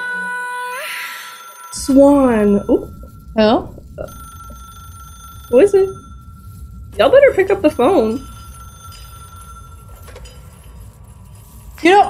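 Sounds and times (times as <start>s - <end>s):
telephone ringing: 0.9s - 10.5s
low hum: 1.7s - 12.0s
woman speaking: 1.8s - 4.3s, 5.5s - 6.0s, 7.0s - 8.3s, 11.8s - 12.0s.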